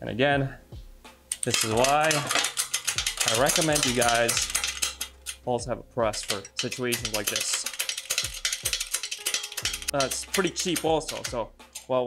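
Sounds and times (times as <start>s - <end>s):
hydraulic press clicking and clanking: 1.3s - 5.4s, 6.2s - 12.0s.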